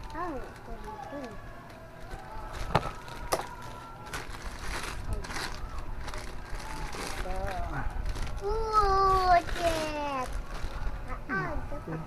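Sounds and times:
plastic wrapping crinkling: 0.0 - 11.1.

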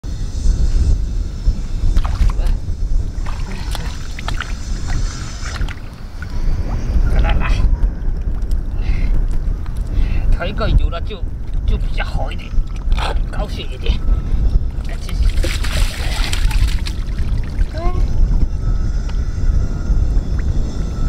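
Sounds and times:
wind buffeting microphone: 0.0 - 21.0
hands splashing in water and mud: 15.2 - 17.6.

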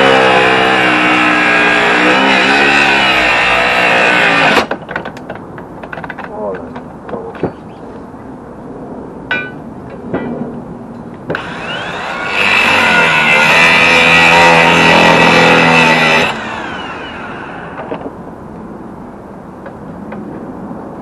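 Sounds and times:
angle grinder grinding steel: 0.0 - 4.7, 11.4 - 17.9.

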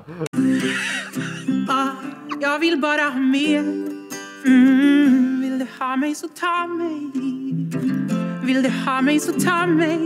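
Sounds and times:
woman laughing heartily: 0.3 - 1.7
music with held guitar notes: 6.8 - 10.0.

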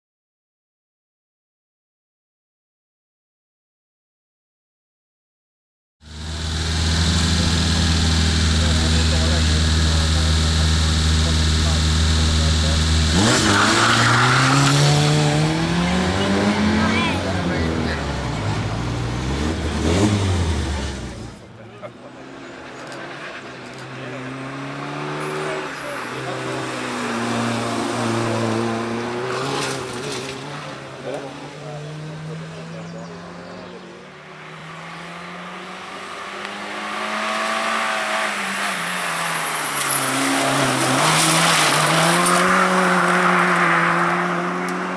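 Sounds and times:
rally car engine revving: 6.0 - 44.9.

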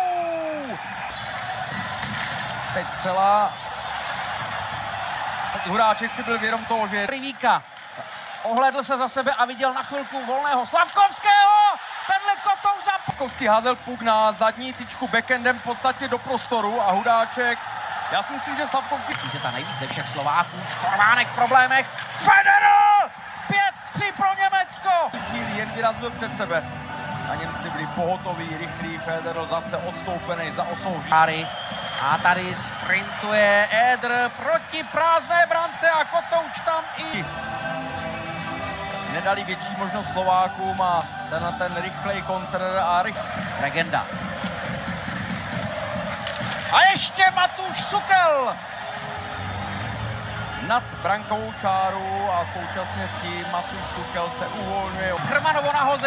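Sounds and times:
arena crowd rumble: 0.0 - 56.0
man commentating: 8.4 - 37.6, 46.7 - 48.7.

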